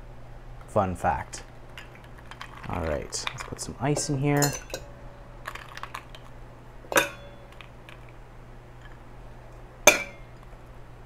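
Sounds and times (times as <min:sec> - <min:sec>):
ice clinking in metal shaker: 0:01.8 - 0:03.7.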